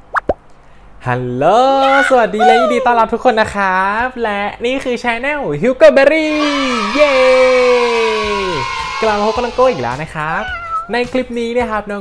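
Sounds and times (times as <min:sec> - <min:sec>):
man shouting excitedly: 0:01.6 - 0:03.0, 0:06.1 - 0:10.4.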